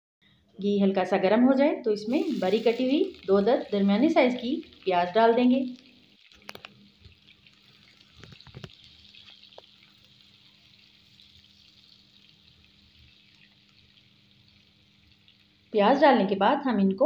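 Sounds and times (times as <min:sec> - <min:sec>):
onions sizzling in oil: 0:01.9 - 0:16.4.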